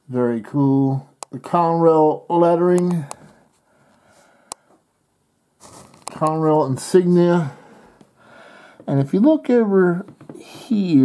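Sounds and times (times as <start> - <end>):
person speaking: 0.0 - 3.4, 5.6 - 7.8, 8.8 - 11.0
breathy noise: 7.3 - 8.9.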